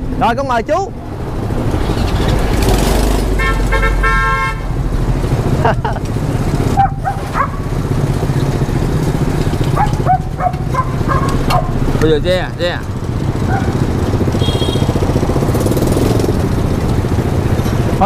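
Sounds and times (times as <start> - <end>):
car horn: 3.3 - 4.8, 14.3 - 15.0
small motorbike engine running: 6.4 - 18.0.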